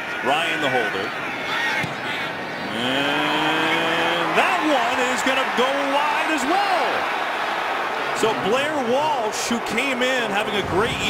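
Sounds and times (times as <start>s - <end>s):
man commentating: 2.7s - 7.1s, 8.1s - 11.0s.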